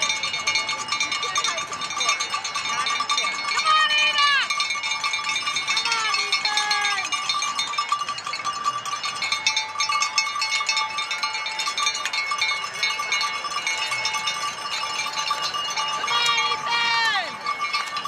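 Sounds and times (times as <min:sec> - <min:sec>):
cowbells jangling: 0:00.0 - 0:18.0.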